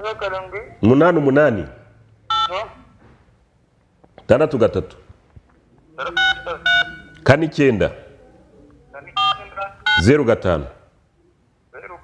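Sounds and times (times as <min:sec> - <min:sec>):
short electronic beeps: 0:02.3 - 0:02.6, 0:06.1 - 0:07.2, 0:09.2 - 0:10.1.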